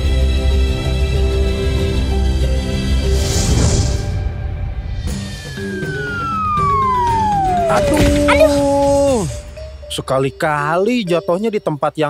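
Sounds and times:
cartoon falling whistle: 5.4 - 9.0
soft background music: 5.8 - 12.0.

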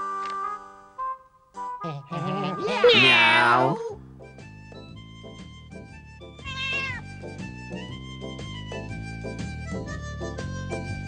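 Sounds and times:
light instrumental music: 0.0 - 11.0
cat meowing: 2.2 - 4.0, 6.4 - 7.0.

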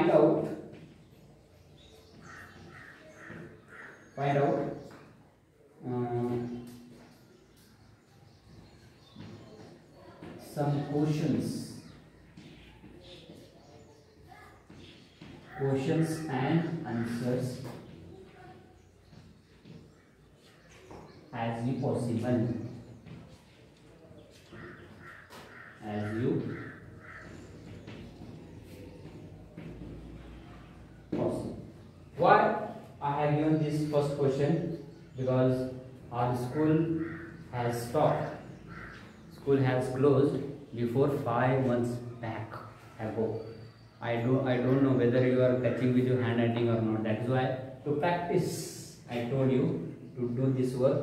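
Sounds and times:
crow cawing: 2.1 - 4.2, 24.4 - 28.4, 36.8 - 37.5, 38.2 - 39.3.

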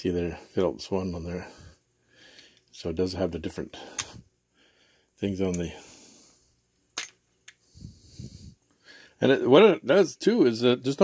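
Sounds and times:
soft breathing: 1.4 - 2.8, 3.7 - 6.6, 7.5 - 9.2.

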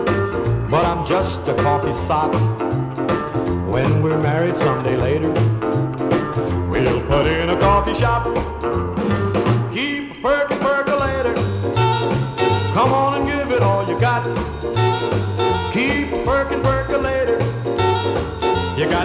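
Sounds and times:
walking bass line: 0.0 - 19.0
saxophone lead: 11.0 - 19.0.

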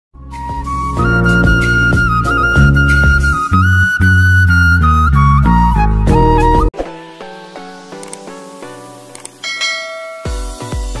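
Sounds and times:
music with pulsing bass: 0.2 - 6.7
bright bell ding: 9.4 - 10.8.

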